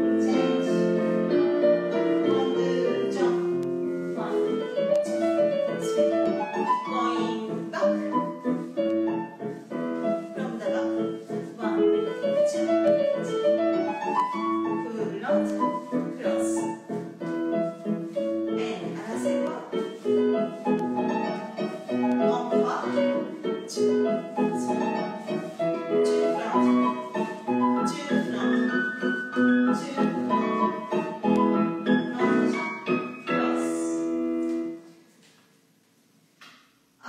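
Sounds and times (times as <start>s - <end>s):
piano music: 0.0s - 35.0s.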